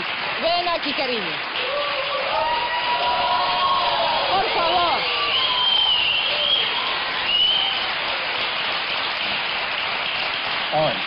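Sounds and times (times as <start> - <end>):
audience applauding and cheering: 0.0 - 11.0
long held shouts: 1.6 - 8.0.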